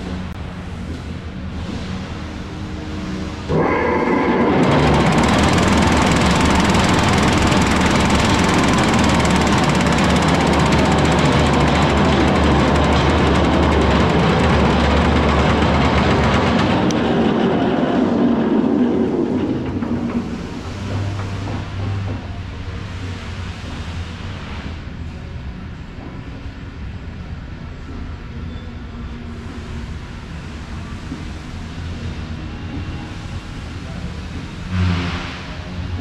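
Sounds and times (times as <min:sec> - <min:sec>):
vibratory tumbler rattling: 0:04.5 - 0:17.2.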